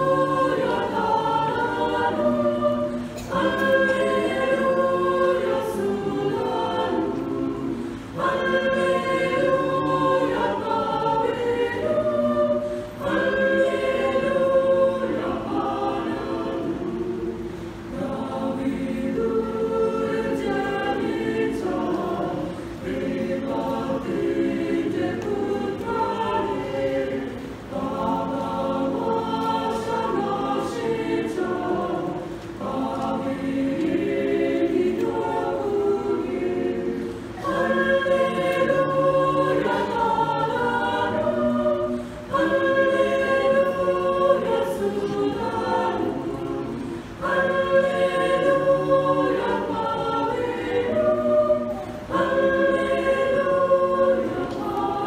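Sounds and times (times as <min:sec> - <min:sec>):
mixed choir singing a hymn: 0:00.0 - 0:55.0.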